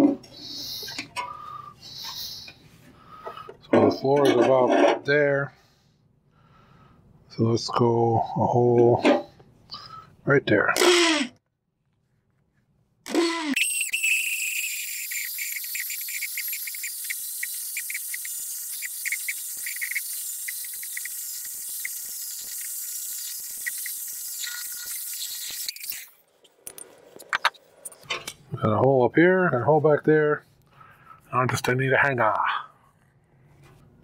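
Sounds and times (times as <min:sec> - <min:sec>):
electric drill boring wood: 0:10.8 - 0:11.3, 0:13.1 - 0:26.0.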